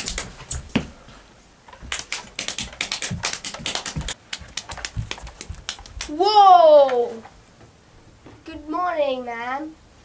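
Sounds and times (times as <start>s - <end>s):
coconut shell clip-clop: 1.8s - 6.2s.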